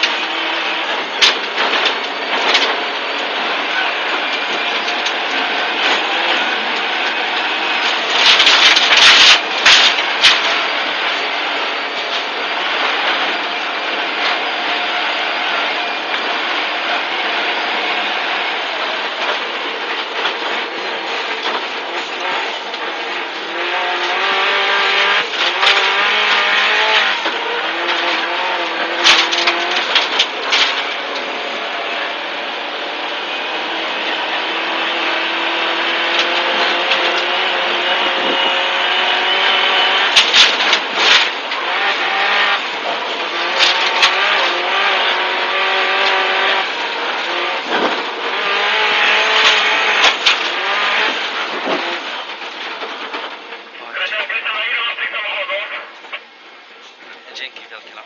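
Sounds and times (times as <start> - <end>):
rally car engine revving: 0.0 - 58.0
road noise: 0.0 - 58.0.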